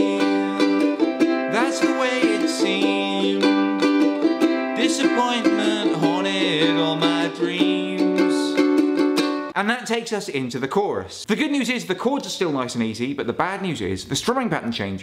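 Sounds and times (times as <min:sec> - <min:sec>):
man singing: 0:00.0 - 0:08.8
ukulele strumming: 0:00.0 - 0:09.6.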